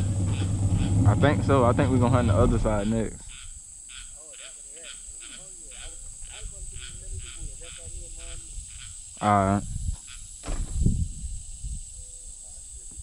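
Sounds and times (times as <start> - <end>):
distant hounds baying: 0.0 - 8.9
insects calling: 0.0 - 13.0.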